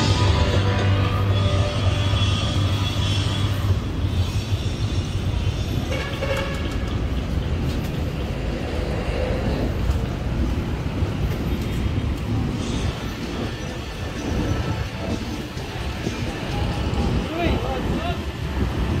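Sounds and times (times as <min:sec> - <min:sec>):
road traffic noise: 0:00.0 - 0:19.0
vehicle rumbling in motion: 0:00.0 - 0:19.0.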